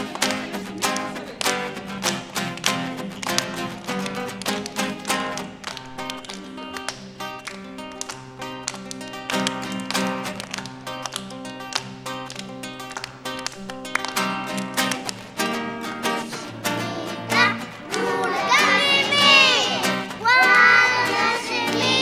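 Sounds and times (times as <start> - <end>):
acoustic guitar strumming: 0.0 - 22.0
children clapping: 0.0 - 22.0.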